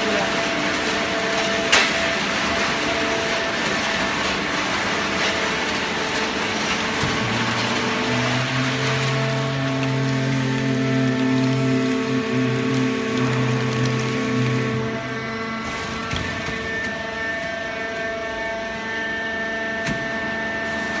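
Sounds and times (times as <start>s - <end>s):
baler machine hum: 0.0s - 20.7s
high steady machine whine: 0.0s - 21.0s.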